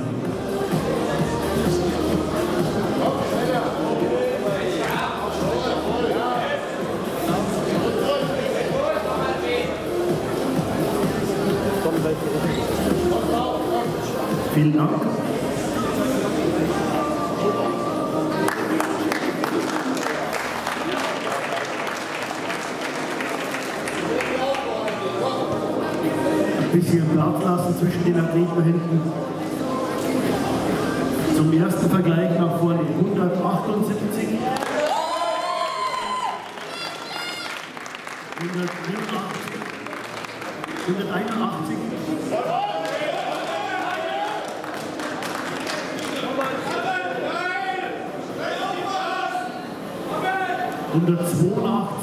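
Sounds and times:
crowd voices: 0:00.0 - 0:52.0
audience applauding: 0:18.4 - 0:25.2, 0:34.5 - 0:41.4, 0:42.5 - 0:47.0.

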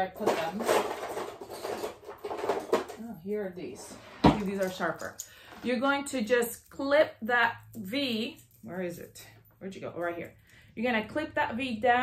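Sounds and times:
rummaging through small items: 0:00.0 - 0:05.8.

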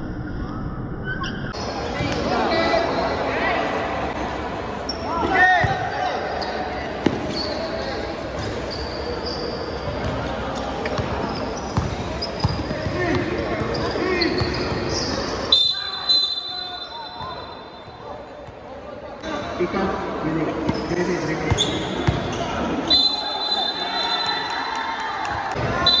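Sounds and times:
voices and shouts: 0:01.6 - 0:08.2, 0:21.0 - 0:26.0
shoe squeaks: 0:04.9 - 0:05.4, 0:06.2 - 0:18.0, 0:20.7 - 0:24.4.

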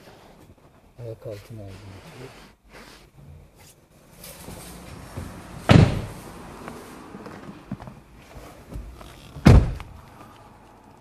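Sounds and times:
faint rustling and handling noise: 0:00.0 - 0:05.6
car door shutting: 0:05.1 - 0:06.2, 0:08.7 - 0:10.0.

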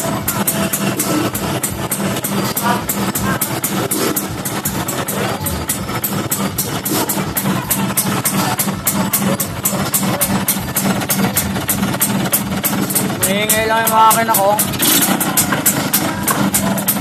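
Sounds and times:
motorcycle idling: 0:00.0 - 0:17.0
music with steady beat: 0:00.0 - 0:17.0.

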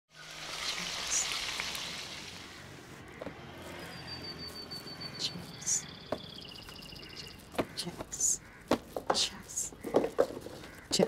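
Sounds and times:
food sizzling in hot oil: 0:00.1 - 0:02.6.

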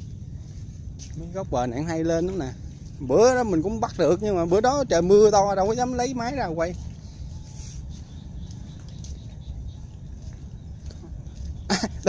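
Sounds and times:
faint outdoor background: 0:00.0 - 0:12.0
rumble on microphone: 0:00.0 - 0:12.0.

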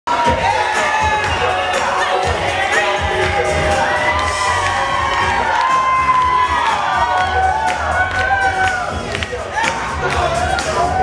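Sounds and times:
crowd cheering and shouting: 0:00.1 - 0:11.0
music playing: 0:00.1 - 0:11.0.

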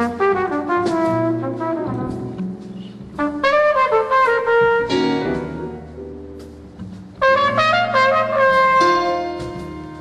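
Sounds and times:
brass horn jazz phrase: 0:00.0 - 0:06.3, 0:07.2 - 0:10.0
double bass: 0:00.0 - 0:10.0
piano: 0:00.0 - 0:10.0.

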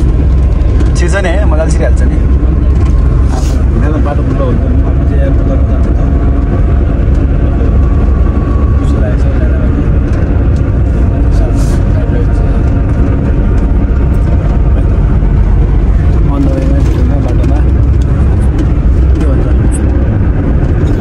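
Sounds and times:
car engine rumble: 0:00.0 - 0:21.0
road noise: 0:00.0 - 0:21.0.

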